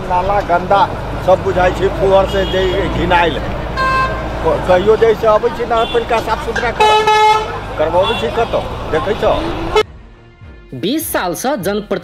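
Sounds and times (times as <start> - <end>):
street traffic rumble: 0.0 - 12.0
vehicle horn honking: 2.1 - 9.9.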